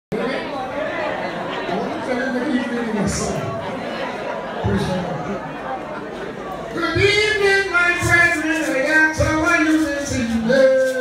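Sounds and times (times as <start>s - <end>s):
background chatter: 0.1s - 11.0s.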